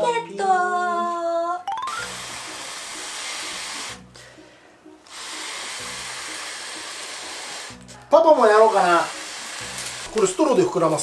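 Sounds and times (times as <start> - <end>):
person blowing into balloon: 1.8 - 4.2, 5.1 - 7.9.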